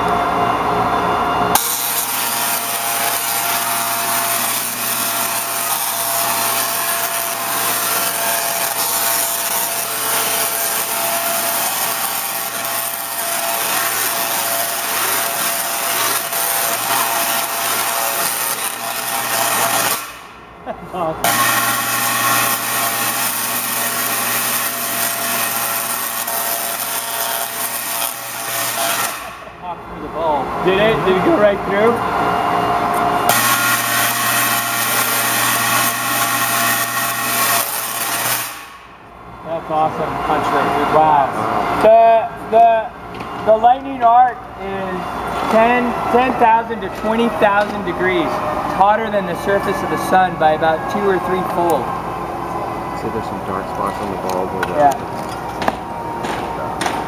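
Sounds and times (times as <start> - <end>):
tesla coil buzzing: 0.0 - 57.0.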